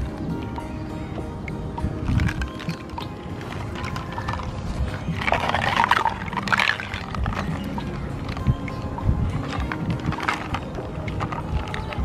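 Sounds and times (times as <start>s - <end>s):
faint background music: 0.0s - 12.0s
water sloshing in plastic tub: 2.2s - 8.6s.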